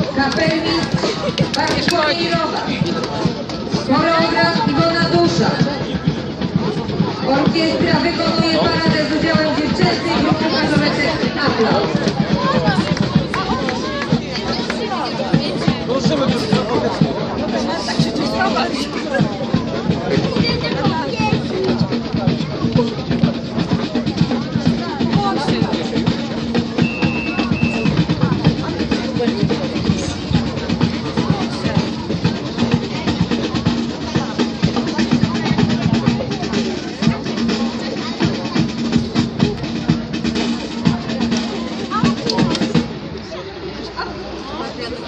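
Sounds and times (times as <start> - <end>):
wind band playing with drums: 0.0 - 45.0.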